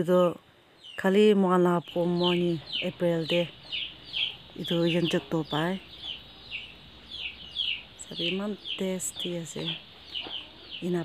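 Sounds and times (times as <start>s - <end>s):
bird chirps: 0.8s - 11.0s.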